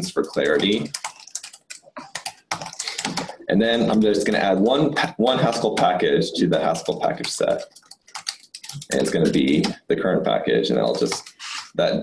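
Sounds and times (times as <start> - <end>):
typing on computer keyboard: 0.0 - 4.4, 5.3 - 9.8, 10.9 - 11.4.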